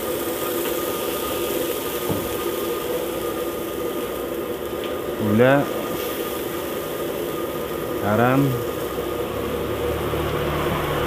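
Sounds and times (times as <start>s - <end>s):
sauce simmering in oil: 0.0s - 11.0s
steady mechanical hum: 0.0s - 11.0s.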